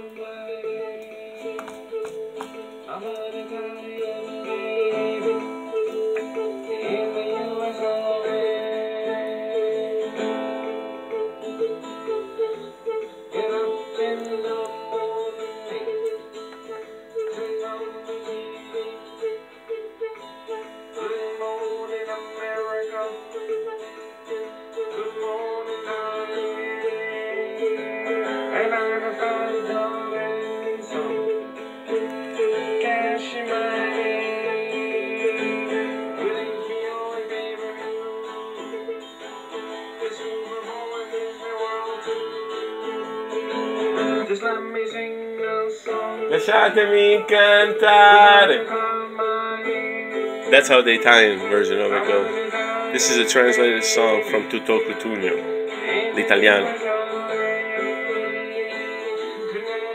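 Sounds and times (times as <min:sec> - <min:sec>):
person singing: 0:00.0 - 0:59.9
plucked acoustic guitar: 0:00.0 - 0:59.9.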